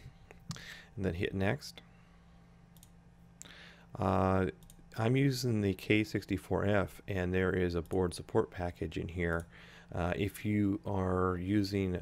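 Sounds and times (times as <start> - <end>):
low steady hum: 0.0 - 12.0
computer mouse clicks: 2.7 - 3.0
soft breath: 3.4 - 3.9.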